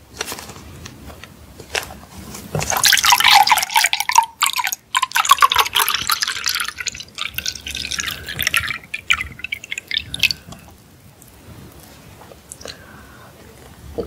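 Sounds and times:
liquid pouring into glass: 0:02.6 - 0:10.7.

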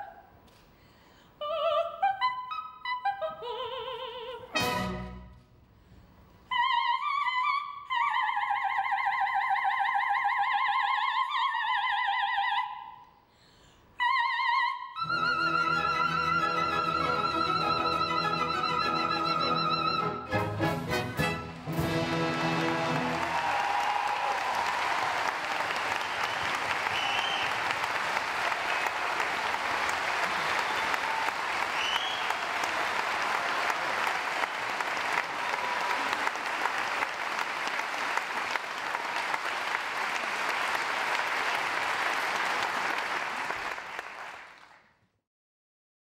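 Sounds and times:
audience calls: 0:20.8 - 0:44.3
audience applauding: 0:20.9 - 0:44.9.

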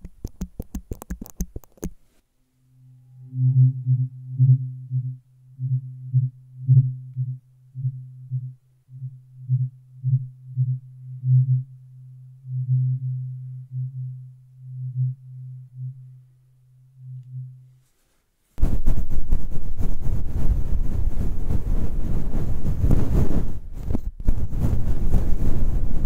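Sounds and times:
brush rustling on microphone: 0:00.0 - 0:02.2, 0:17.7 - 0:26.0
tuning fork humming: 0:02.4 - 0:17.8.

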